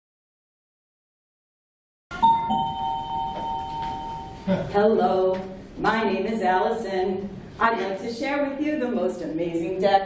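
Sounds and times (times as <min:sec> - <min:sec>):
two-note doorbell chime: 0:02.1 - 0:04.5.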